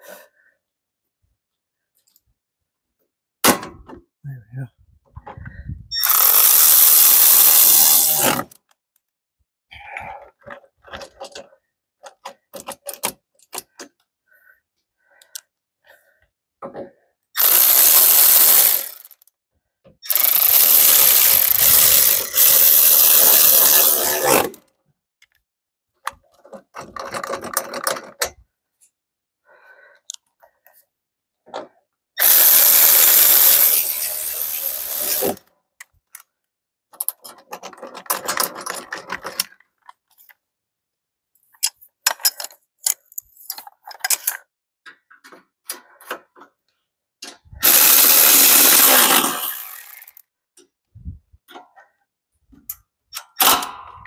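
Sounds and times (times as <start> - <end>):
cordless power tool driving fasteners: 6.0 - 8.7, 17.4 - 19.3, 20.0 - 24.6, 32.2 - 35.4, 47.4 - 50.3
hand tools clicking and knocking: 10.4 - 14.0, 26.0 - 28.4, 36.9 - 40.0, 41.5 - 48.0.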